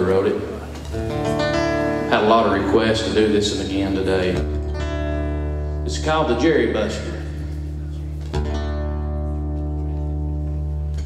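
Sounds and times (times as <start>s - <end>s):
finger-picked acoustic guitar: 0.1s - 11.0s.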